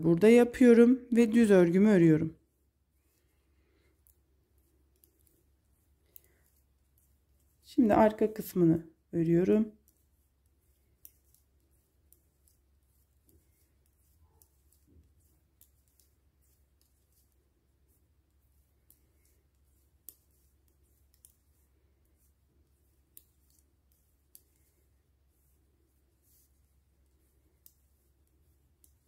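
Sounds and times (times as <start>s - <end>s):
knitting needles clicking: 3.0s - 29.0s.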